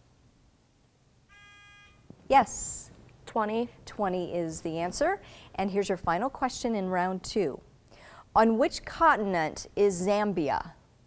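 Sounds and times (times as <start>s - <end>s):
electronic buzzer beep: 1.3s - 2.0s.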